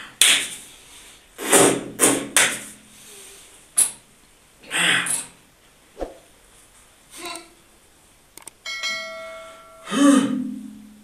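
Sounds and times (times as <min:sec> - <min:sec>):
bright bell chime: 0:08.6 - 0:09.9.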